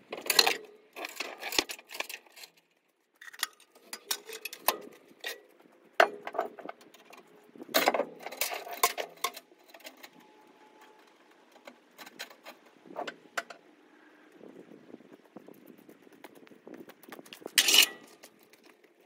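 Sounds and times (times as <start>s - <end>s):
steel chains clinking and clanking: 3.2s - 10.3s, 17.5s - 18.7s.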